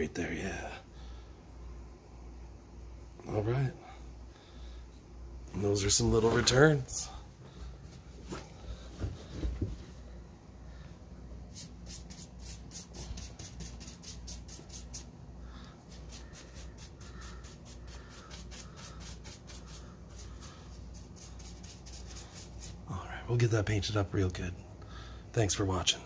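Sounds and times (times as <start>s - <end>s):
paintbrush strokes on wood: 11.4s - 15.2s, 15.8s - 23.0s.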